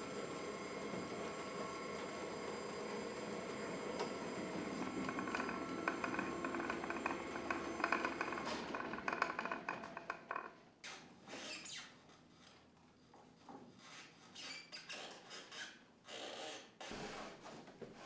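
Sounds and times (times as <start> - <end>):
electric drive whirring and whining: 0.0 - 10.2.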